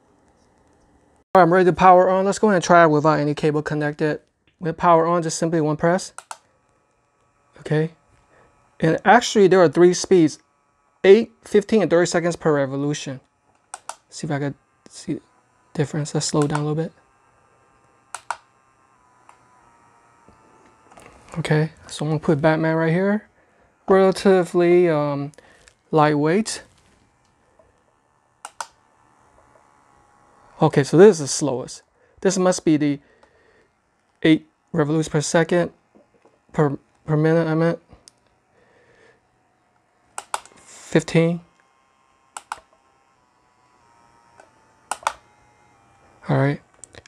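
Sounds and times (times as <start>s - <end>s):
turntable button clicks: 6.1s - 6.4s, 13.6s - 14.1s, 16.3s - 16.7s, 18.1s - 18.5s, 28.4s - 28.8s, 40.2s - 40.6s, 42.4s - 42.7s, 44.9s - 45.2s.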